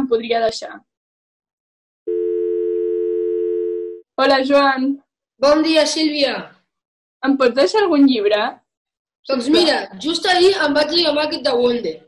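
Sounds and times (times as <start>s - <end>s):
telephone ringing tone: 2.1s - 4.0s.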